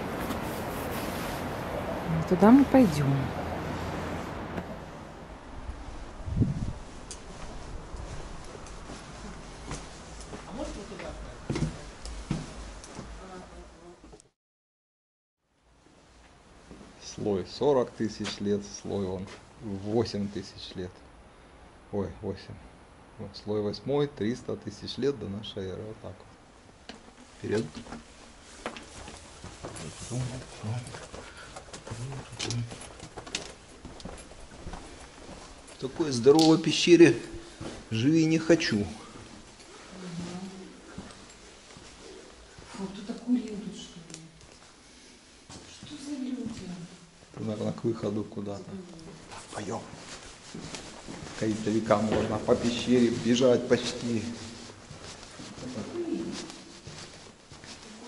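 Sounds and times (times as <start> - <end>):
footsteps on stone: 27.6 - 36.3, 49.9 - 55.6.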